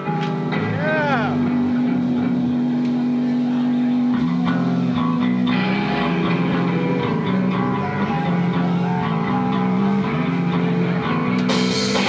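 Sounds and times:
rock band guitars and bass droning: 0.0 - 12.0.

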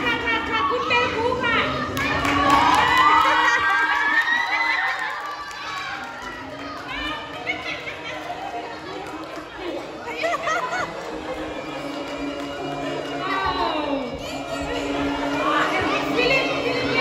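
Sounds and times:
children shouting and cheering: 1.6 - 11.1.

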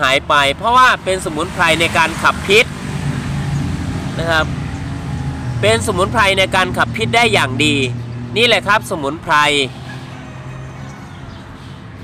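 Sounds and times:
man speaking: 0.0 - 2.7, 4.2 - 4.6, 5.6 - 9.7
low motor hum: 2.8 - 8.4.

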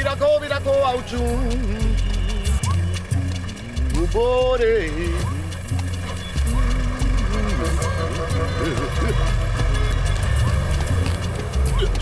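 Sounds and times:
film music with pulsing bass: 0.0 - 12.0.

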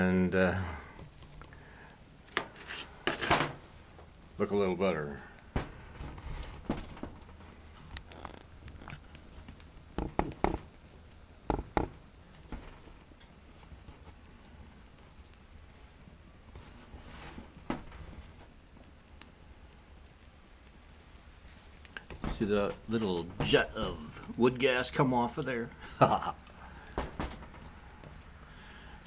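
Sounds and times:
twigs crackling and popping in fire: 0.0 - 29.0.

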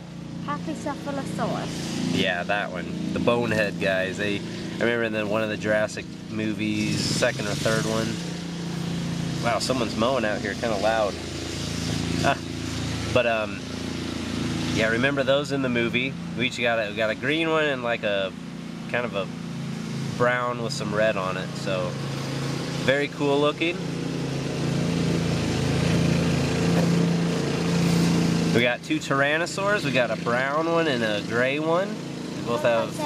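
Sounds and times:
lawn mower engine running: 0.0 - 33.0.

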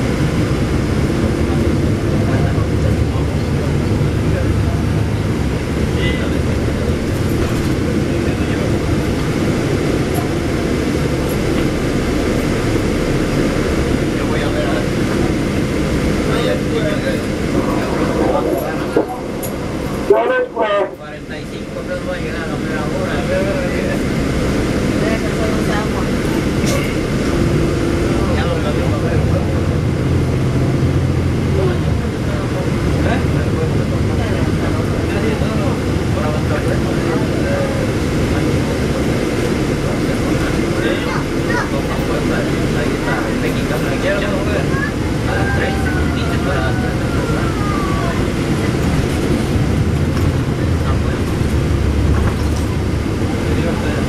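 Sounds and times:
bus engine running: 0.0 - 54.0
road rumble: 0.0 - 54.0.

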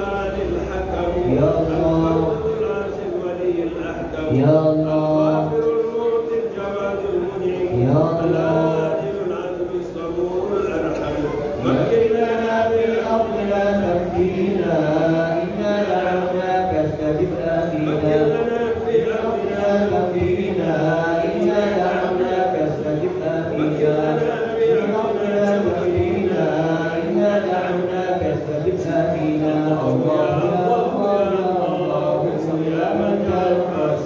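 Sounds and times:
man chanting into a microphone: 0.0 - 34.0.

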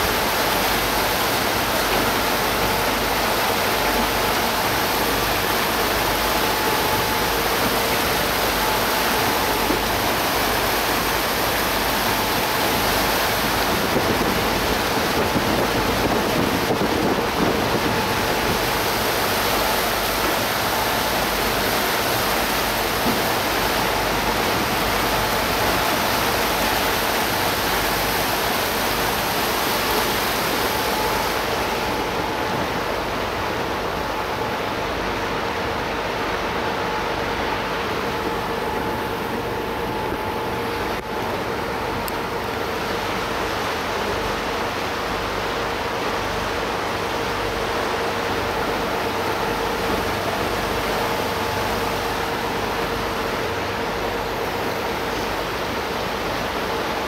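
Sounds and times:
water and air rushing past boat: 0.0 - 57.0.

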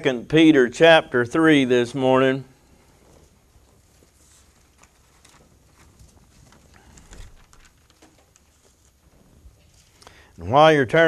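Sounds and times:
paper pages rustling: 3.0 - 10.0.

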